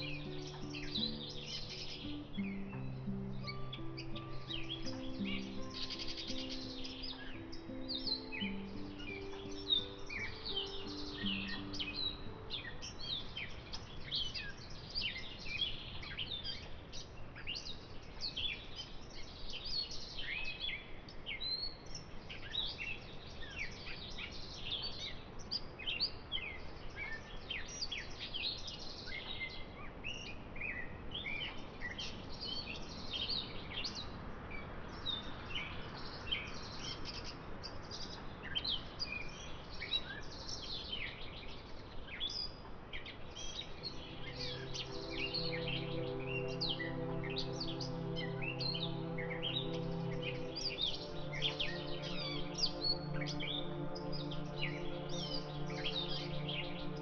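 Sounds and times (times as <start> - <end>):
soft music of held low notes: 0.0 - 17.0, 35.0 - 57.0
small birds chirping: 0.0 - 34.2, 34.9 - 57.0.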